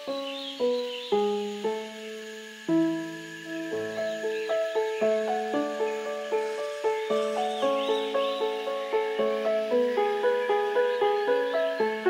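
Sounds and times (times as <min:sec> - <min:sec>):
high bird chirps: 0:00.0 - 0:12.0
soft piano arpeggio: 0:00.0 - 0:12.0.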